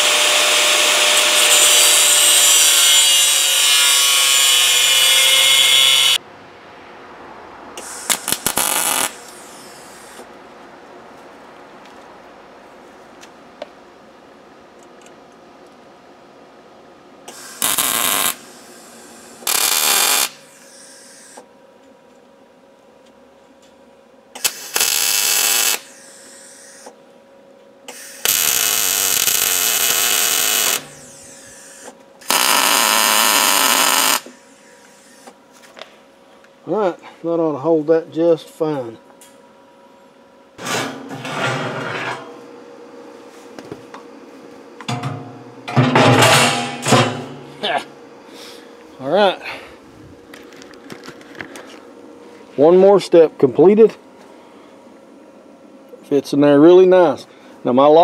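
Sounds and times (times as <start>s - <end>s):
angle grinder on steel: 0.0s - 6.2s, 32.3s - 34.3s
wire-feed welding bursts: 0.0s - 6.2s, 7.8s - 10.2s, 17.3s - 21.4s, 24.4s - 26.9s, 27.9s - 35.3s.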